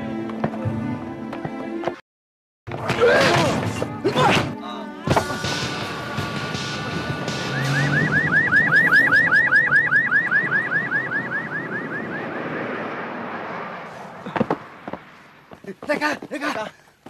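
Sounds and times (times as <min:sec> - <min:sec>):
police siren yelping: 0:07.4 - 0:12.9.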